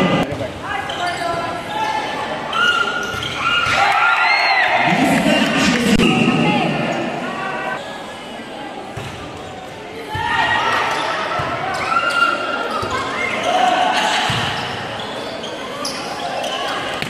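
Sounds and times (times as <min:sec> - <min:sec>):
people shouting in a gym: 0:00.0 - 0:04.9, 0:10.0 - 0:16.8.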